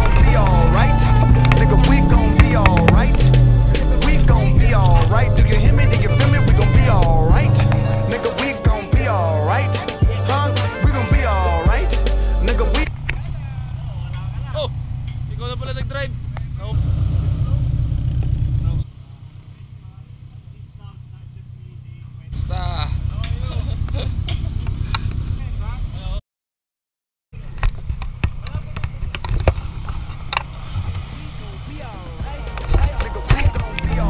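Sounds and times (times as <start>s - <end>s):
music: 0.0s - 13.0s, 31.6s - 34.0s
men talking: 0.0s - 17.8s, 18.5s - 26.2s, 31.1s - 34.0s
car engine idling: 0.0s - 26.2s, 27.4s - 34.0s.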